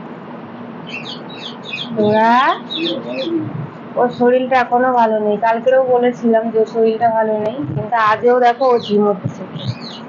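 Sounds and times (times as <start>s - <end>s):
steady background hiss: 0.0s - 10.0s
bird chirping high notes: 0.9s - 3.5s.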